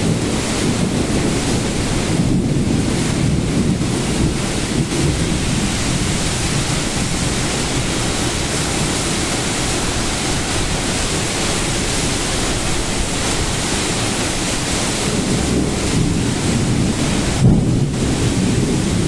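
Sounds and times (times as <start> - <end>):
heavy rain: 0.0 - 19.0
storm wind: 0.0 - 19.0
wind buffeting microphone: 0.0 - 19.0.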